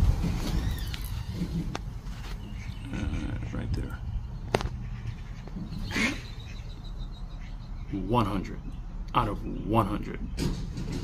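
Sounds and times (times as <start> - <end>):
quack-like animal call: 4.8 - 6.6.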